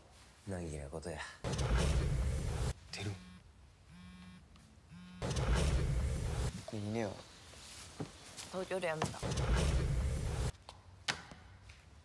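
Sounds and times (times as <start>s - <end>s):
phone vibrating buzz: 3.0s - 6.4s.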